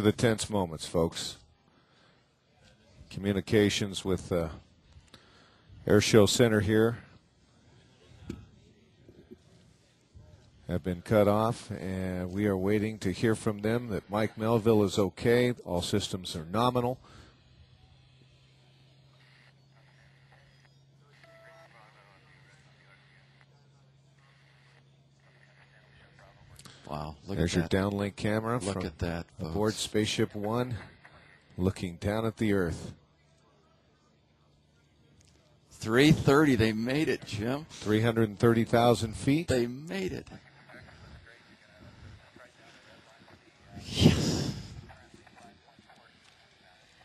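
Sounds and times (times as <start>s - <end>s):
faint background voices: 0.0s - 47.0s
faint low hum: 0.0s - 47.0s.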